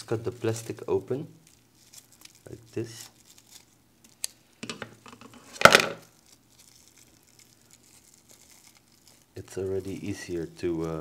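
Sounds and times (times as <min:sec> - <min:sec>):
plastic wrapper crinkling: 0:00.0 - 0:11.0.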